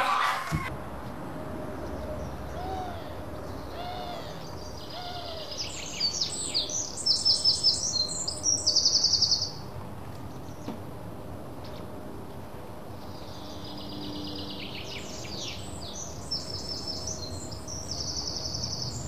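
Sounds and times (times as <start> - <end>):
birds chirping and twittering: 1.6 - 9.6, 13.0 - 19.0
bird hooting: 2.5 - 6.2.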